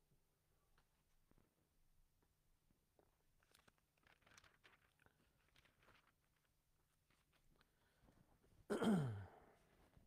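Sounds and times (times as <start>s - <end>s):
man coughing: 8.7s - 9.4s.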